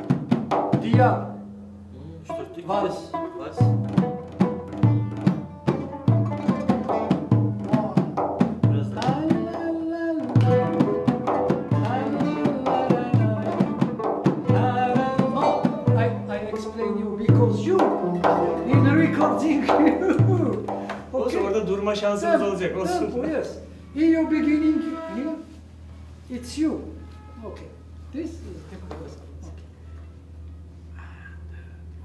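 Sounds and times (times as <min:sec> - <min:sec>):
plucked string melody: 0:00.0 - 0:21.7
steady low beat: 0:03.0 - 0:09.5, 0:10.4 - 0:21.2.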